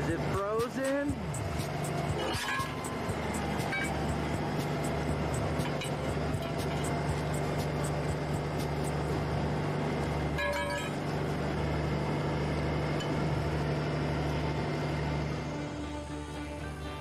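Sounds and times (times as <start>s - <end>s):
diesel truck engine idling: 0.0s - 17.0s
music: 0.0s - 17.0s.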